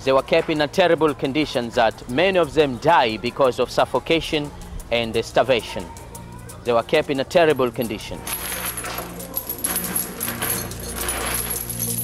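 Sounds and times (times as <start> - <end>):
metallic jingling: 7.4 - 12.0.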